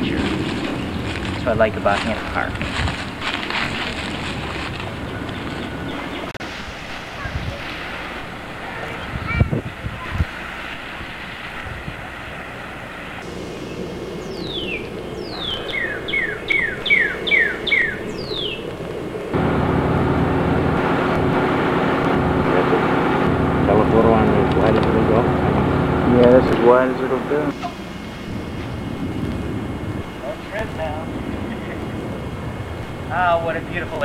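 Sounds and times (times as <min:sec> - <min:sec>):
low hum: 0:00.0 - 0:09.2, 0:10.2 - 0:34.0
outdoor hiss: 0:06.4 - 0:11.6, 0:12.4 - 0:16.6
songbird whistling: 0:13.5 - 0:18.7.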